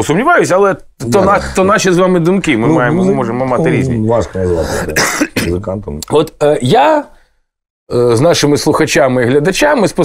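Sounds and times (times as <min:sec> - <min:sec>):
men talking: 0:00.0 - 0:07.2, 0:07.9 - 0:10.0
throat clearing: 0:04.7 - 0:05.6
short cough: 0:04.9 - 0:05.6.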